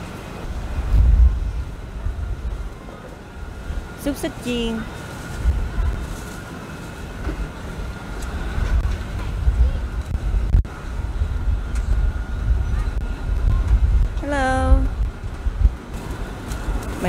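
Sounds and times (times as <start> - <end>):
low street rumble: 0.0 - 17.0.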